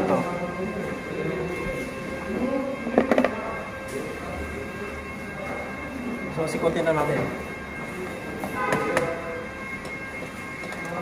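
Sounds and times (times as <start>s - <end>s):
faint high whining tones: 0.0s - 11.0s.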